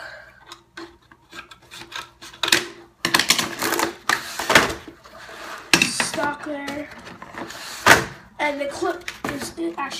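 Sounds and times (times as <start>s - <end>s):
rustling cardboard and plastic: 0.6s - 9.9s.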